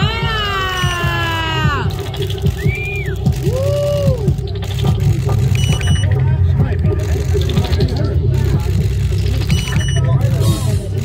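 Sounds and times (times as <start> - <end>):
short high electronic beep: 5.5 - 6.1, 9.5 - 10.1.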